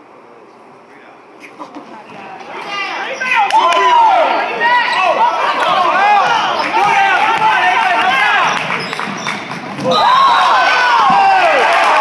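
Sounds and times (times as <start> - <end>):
spectators shouting: 2.5 - 12.0.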